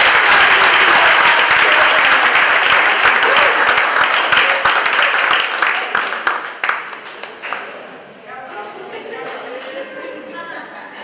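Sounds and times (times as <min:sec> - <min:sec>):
audience applause: 0:00.0 - 0:07.9.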